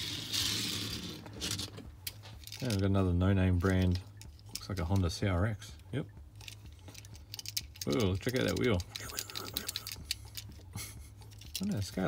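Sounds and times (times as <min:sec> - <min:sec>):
toy car wheels rolling: 0:00.0 - 0:02.8, 0:06.4 - 0:10.6, 0:11.3 - 0:12.0.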